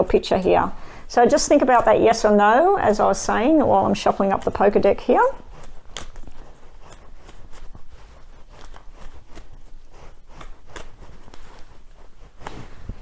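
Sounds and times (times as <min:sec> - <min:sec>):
playing cards being shuffled: 0:05.4 - 0:13.0.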